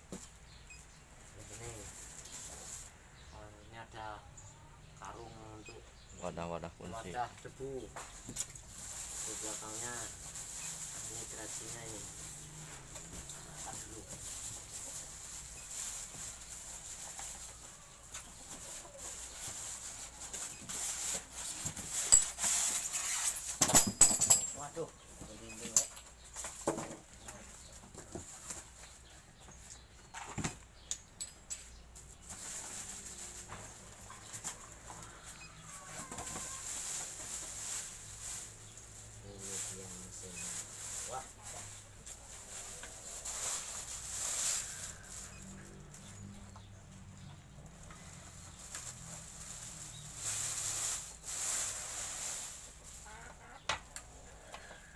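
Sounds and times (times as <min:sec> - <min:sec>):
plastic and cardboard rustling: 0:07.0 - 0:30.6, 0:32.0 - 0:46.3, 0:47.8 - 0:53.1.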